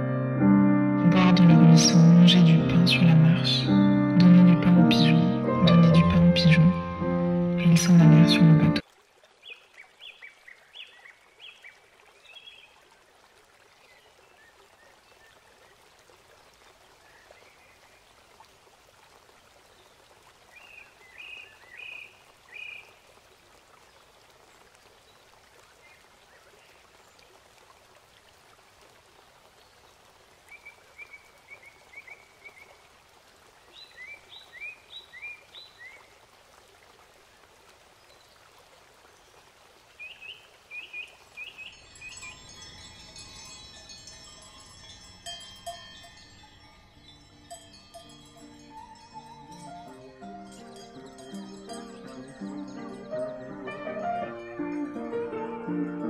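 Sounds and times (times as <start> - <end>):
music of sustained ringing tones: 41.7 - 53.6.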